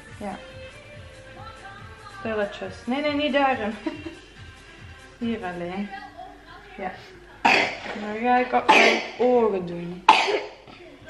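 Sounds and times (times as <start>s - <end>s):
person coughing: 7.5s - 7.9s, 8.7s - 9.2s, 10.1s - 10.6s
quiet talk: 9.6s - 11.0s.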